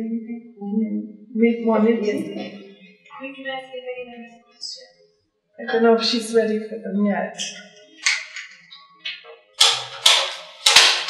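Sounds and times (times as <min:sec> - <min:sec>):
hard objects clicking and clattering: 0:09.6 - 0:11.0.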